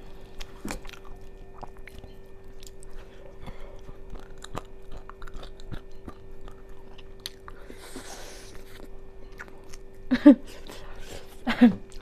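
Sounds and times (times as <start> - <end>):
low hum: 0.0 - 12.0
person chewing with wet smacks: 0.0 - 12.0.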